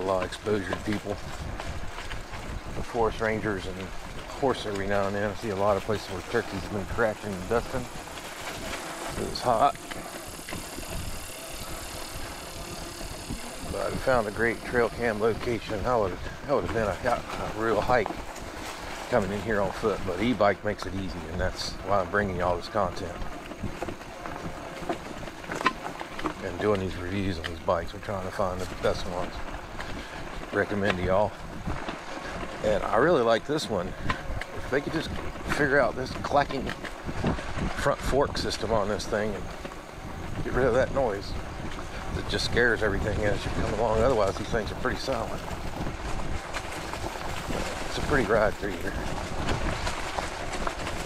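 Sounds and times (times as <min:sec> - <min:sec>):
bicycle tyre rumble: 0:00.0 - 0:51.0
bike rolling over sandy trail: 0:00.0 - 0:51.0
wind on microphone: 0:00.0 - 0:51.0.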